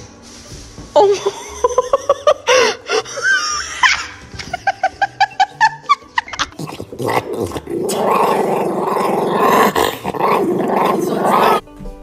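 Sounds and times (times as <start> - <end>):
dog growling while eating: 6.5 - 11.6.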